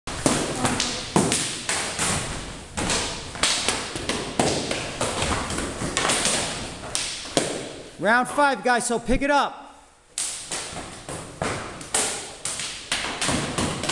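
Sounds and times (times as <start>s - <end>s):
practice sticks clacking: 10.1s - 13.9s.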